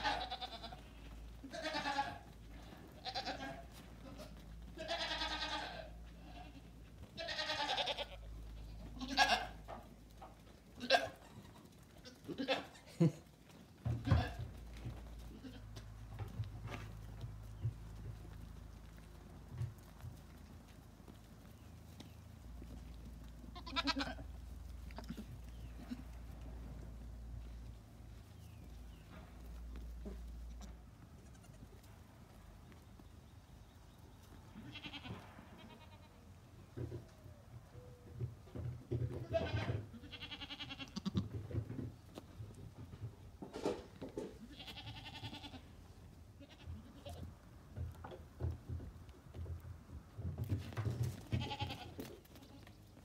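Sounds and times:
goat bleating: 0:00.0 - 0:09.8, 0:10.7 - 0:14.6, 0:15.2 - 0:15.9, 0:23.4 - 0:26.2, 0:30.4 - 0:31.9, 0:34.6 - 0:36.3, 0:39.1 - 0:41.4, 0:44.2 - 0:45.8, 0:46.4 - 0:47.3, 0:51.2 - 0:52.8.

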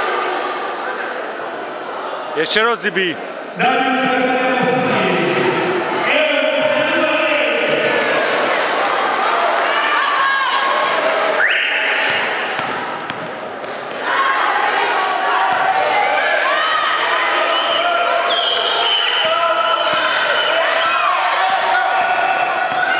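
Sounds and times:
basketball bouncing on floor: 0:12.1 - 0:13.4.

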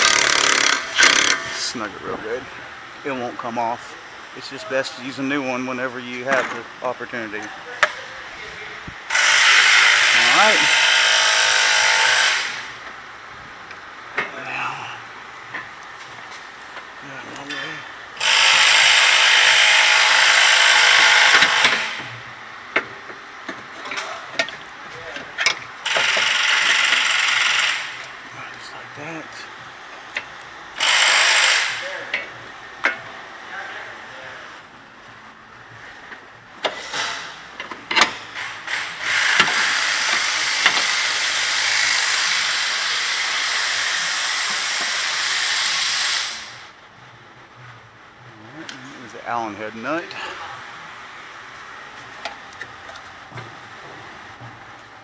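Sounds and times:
power ratchet running: 0:00.0 - 0:01.6, 0:09.1 - 0:12.8, 0:18.2 - 0:22.1, 0:25.8 - 0:28.1, 0:30.7 - 0:32.0, 0:38.0 - 0:46.7.

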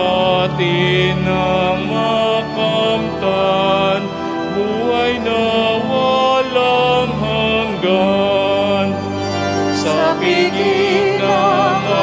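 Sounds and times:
voices singing a hymn: 0:00.0 - 0:12.0.

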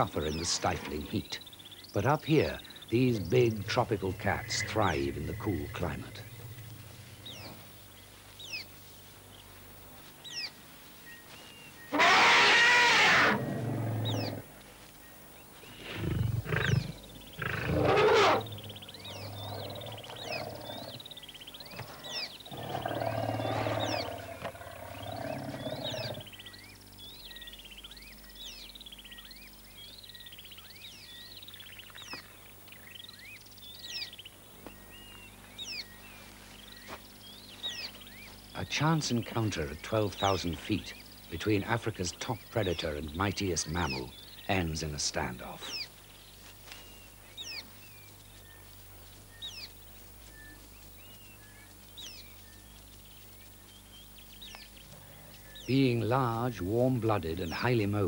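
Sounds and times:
small birds chirping: 0:00.0 - 0:58.0
lions roaring and snarling: 0:11.9 - 0:14.4, 0:15.8 - 0:26.3.

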